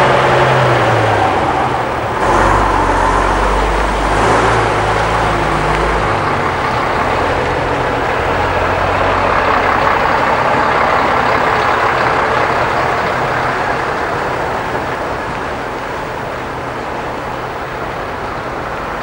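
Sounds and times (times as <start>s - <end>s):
lorry diesel engine passing: 0.0s - 19.0s
tyres on muddy track: 0.0s - 19.0s.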